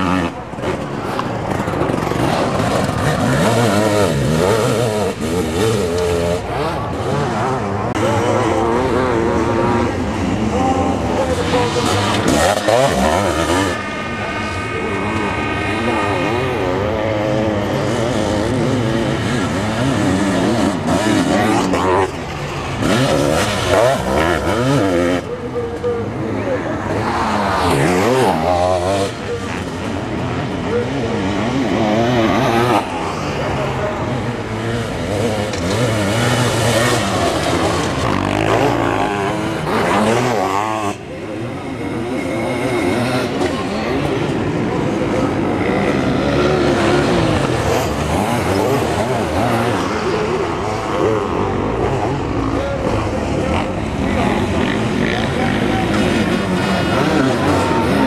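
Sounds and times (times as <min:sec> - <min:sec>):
motocross engines revving past: 0:00.0 - 0:58.0.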